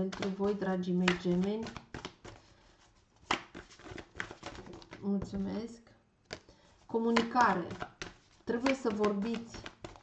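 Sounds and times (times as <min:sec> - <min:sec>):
cards tapping on table: 0:07.1 - 0:10.0.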